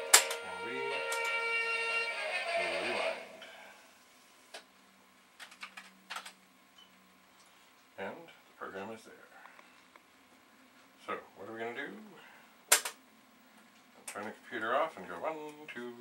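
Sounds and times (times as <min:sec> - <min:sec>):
held musical tones: 0:00.0 - 0:03.8.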